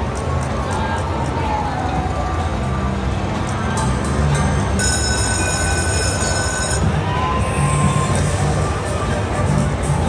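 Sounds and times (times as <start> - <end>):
slot machine ringing electronic tone: 4.4 - 6.9.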